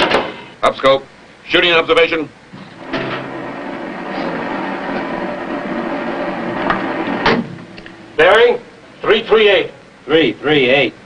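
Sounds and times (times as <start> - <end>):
periscope hoist mechanical hum: 1.2 - 10.1.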